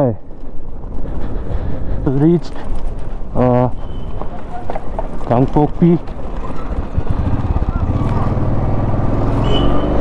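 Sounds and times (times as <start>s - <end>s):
motorcycle engine pulling away: 6.4s - 10.0s.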